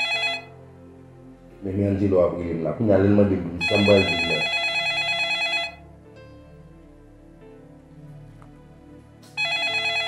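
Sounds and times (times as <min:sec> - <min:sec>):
phone ringing: 0:00.0 - 0:00.6, 0:03.6 - 0:05.9, 0:09.3 - 0:10.0
faint background music: 0:00.0 - 0:10.0
man's voice: 0:01.6 - 0:04.5.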